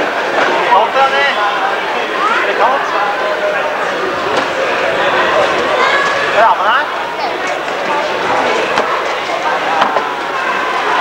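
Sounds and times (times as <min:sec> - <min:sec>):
players' voices and calls: 0:00.0 - 0:11.0.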